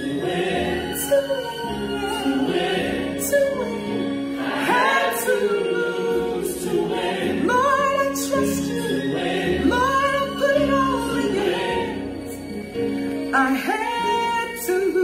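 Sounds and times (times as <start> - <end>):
sustained accompanying chords: 0.0 - 14.2
woman singing gospel song: 0.8 - 4.0, 4.6 - 9.0, 9.6 - 12.0, 13.3 - 15.0.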